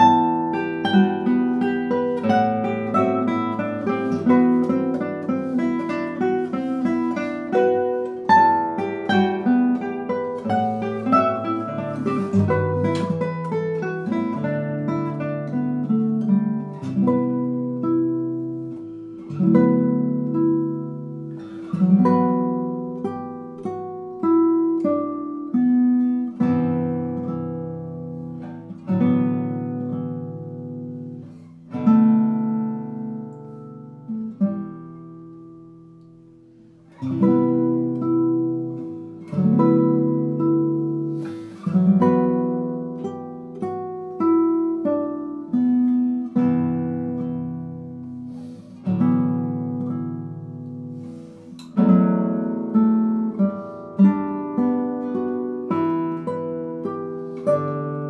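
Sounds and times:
classical guitar duet: 0.0s - 58.0s.

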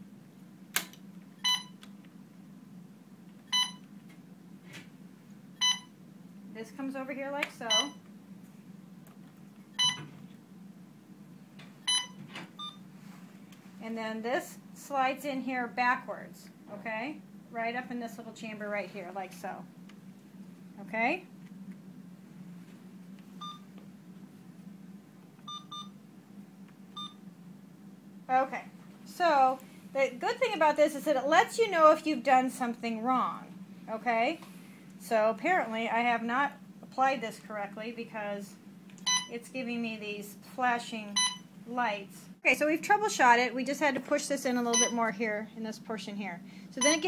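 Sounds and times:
steady low hum: 0.0s - 47.0s
infusion pump beeping: 1.4s - 1.8s, 3.5s - 3.9s, 5.6s - 5.9s, 7.7s - 8.0s, 9.8s - 10.1s, 11.9s - 12.8s, 23.4s - 23.7s, 25.4s - 26.0s, 26.9s - 27.2s, 39.0s - 39.3s, 41.2s - 41.5s, 44.7s - 45.0s, 46.8s - 47.0s.

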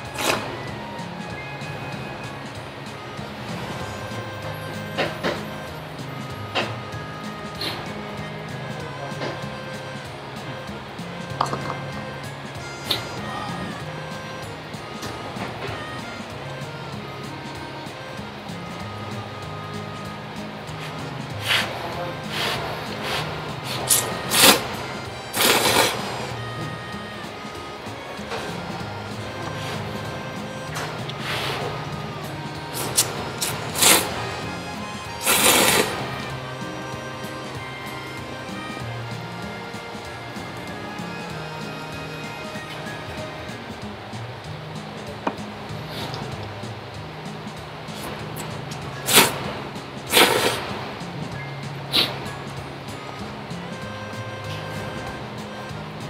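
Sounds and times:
background music: 0.0s - 56.0s
person slurping noodles: 25.4s - 26.0s, 33.8s - 34.1s, 35.2s - 35.9s, 50.1s - 50.6s, 51.9s - 52.1s.

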